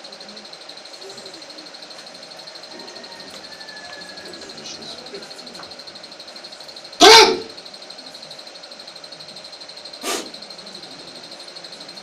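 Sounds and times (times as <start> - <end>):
burst of breath at microphone: 10.0 - 10.4.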